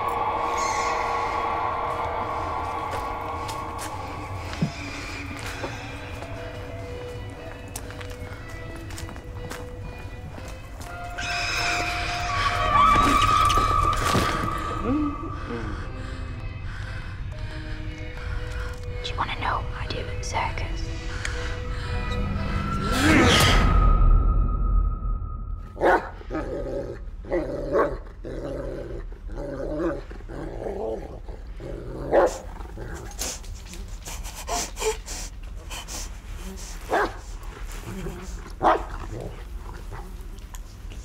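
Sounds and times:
droning horror score: 0.0s - 36.6s.

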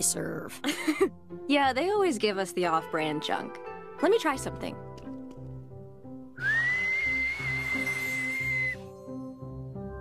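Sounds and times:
soft background music: 0.0s - 10.0s
long whistled note: 6.4s - 8.9s.

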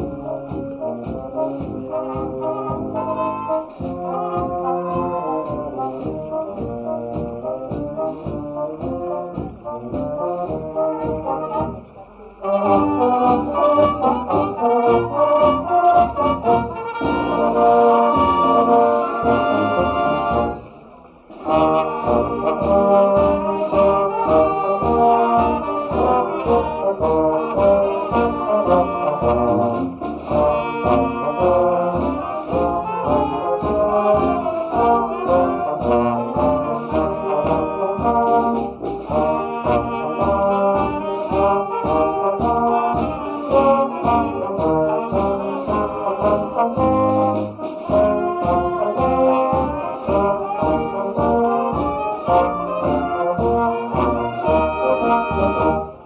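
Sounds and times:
wind band playing a tune: 0.0s - 56.0s.

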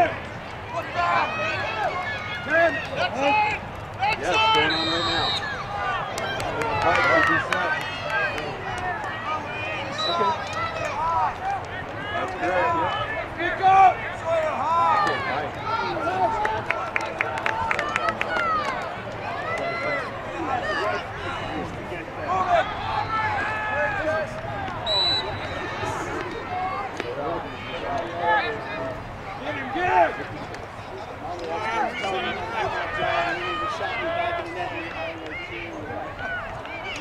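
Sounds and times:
crowd shouting and calling out: 0.0s - 37.0s.

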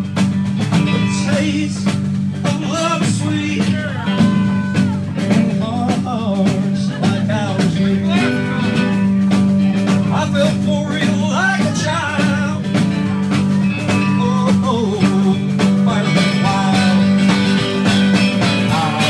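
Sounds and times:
band playing country song: 0.0s - 19.0s
person singing: 0.0s - 19.0s.

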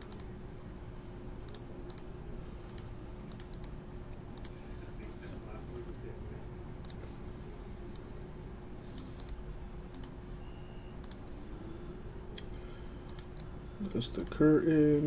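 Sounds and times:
keyboard and mouse clicks: 0.0s - 0.3s, 1.4s - 2.1s, 2.7s - 4.6s, 8.9s - 10.2s, 11.0s - 11.3s, 13.1s - 13.5s
low steady hum: 0.0s - 15.0s.

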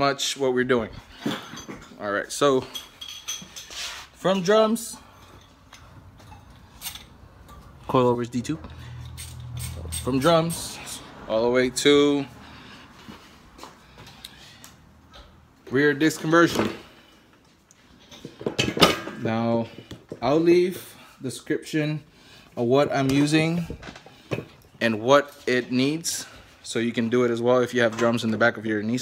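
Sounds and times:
metallic clinks and knocks: 2.6s - 3.8s, 8.8s - 10.7s.

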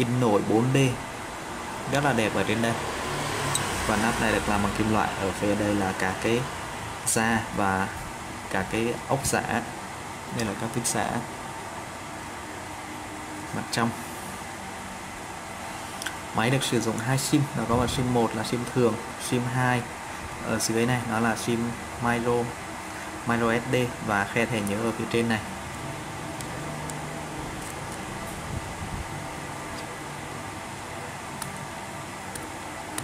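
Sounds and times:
steady background hiss: 0.0s - 33.0s.

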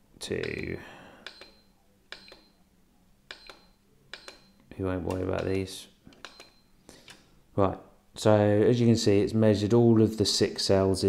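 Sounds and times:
button clicks: 1.2s - 2.6s, 3.3s - 7.2s.

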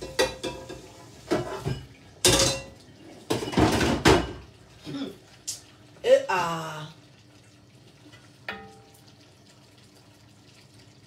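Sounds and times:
dishes and utensils clinking: 0.0s - 4.5s, 8.5s - 8.9s.

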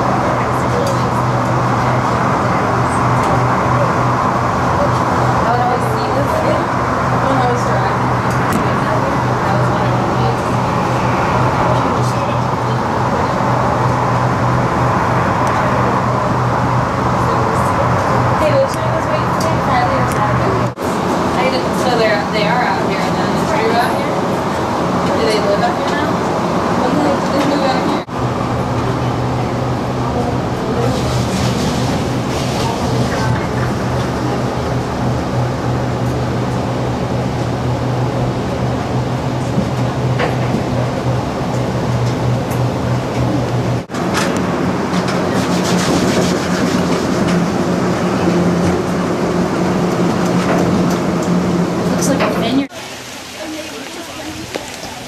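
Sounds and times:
tram hum with low drone: 0.0s - 55.0s.

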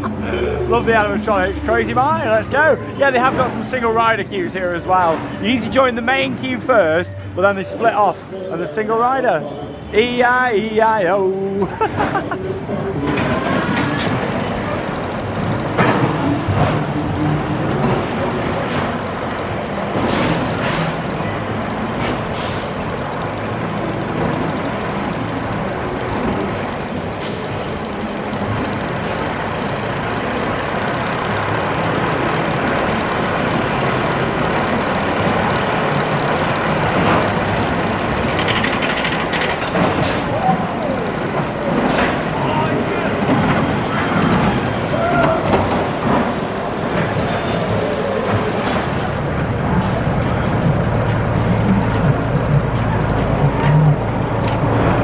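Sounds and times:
roller coaster rumbling on track: 0.0s - 55.0s
sharp clanks and clicks: 36.9s - 40.3s.

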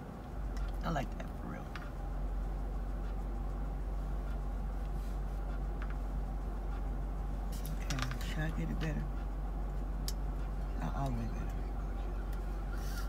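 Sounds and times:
low hum in car cabin: 0.0s - 13.0s.

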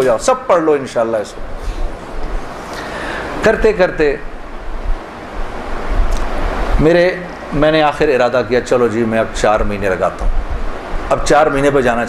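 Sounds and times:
man speaking: 0.0s - 1.4s, 3.4s - 4.3s, 6.8s - 10.2s, 11.1s - 12.0s
steady rushing noise: 0.0s - 12.0s.

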